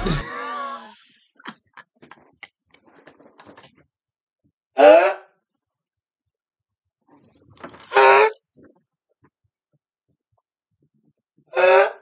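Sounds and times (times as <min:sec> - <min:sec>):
man laughing loudly: 0:00.0 - 0:00.9.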